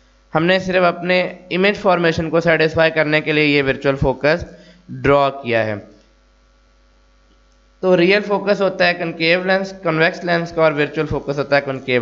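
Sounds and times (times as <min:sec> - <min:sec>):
faint electrical hum: 0:00.0 - 0:12.0
man speaking: 0:00.4 - 0:05.9, 0:07.8 - 0:12.0.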